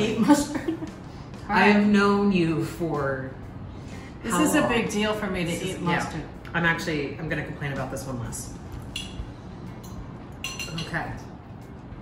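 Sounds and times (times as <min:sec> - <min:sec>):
forks clinking on ceramic plates: 0:09.8 - 0:11.2.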